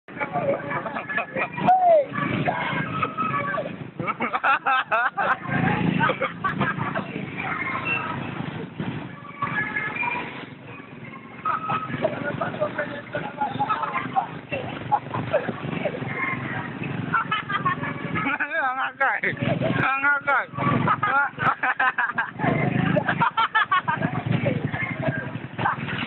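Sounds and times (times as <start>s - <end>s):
street traffic: 0.0s - 26.0s
people talking and calling out: 0.1s - 26.0s.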